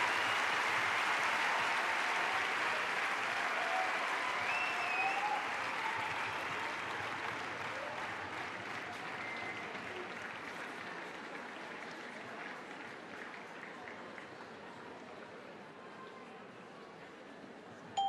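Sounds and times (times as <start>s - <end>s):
cheers and whistles: 0.0s - 6.8s, 8.9s - 9.8s
audience applauding: 0.0s - 14.5s.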